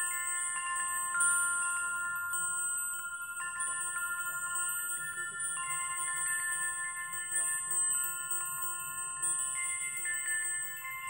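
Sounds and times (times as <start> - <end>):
chimes ringing: 0.0 - 11.0.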